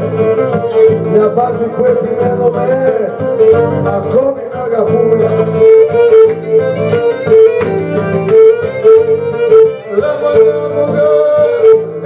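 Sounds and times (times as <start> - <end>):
man singing: 0.0 - 6.2, 9.6 - 12.0
plucked lute: 0.0 - 12.0
bowed lyra: 5.4 - 12.0.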